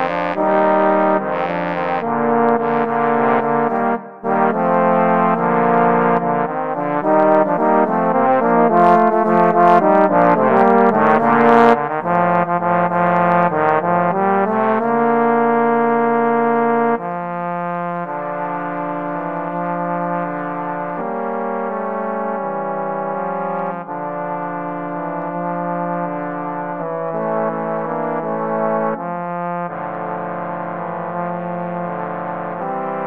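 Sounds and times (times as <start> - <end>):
trombones playing: 0.0 - 33.0.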